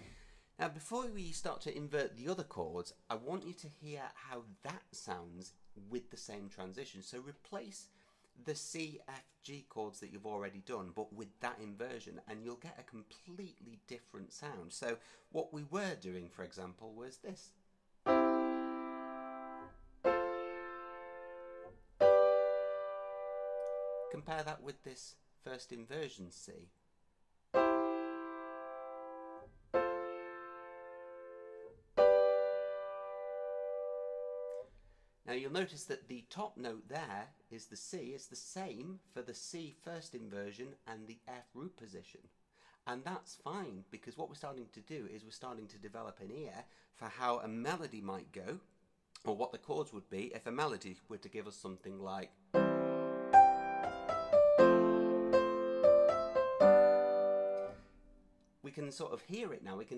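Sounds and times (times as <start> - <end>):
grand piano chords: 18.1 - 24.2, 27.6 - 34.6, 52.6 - 57.8.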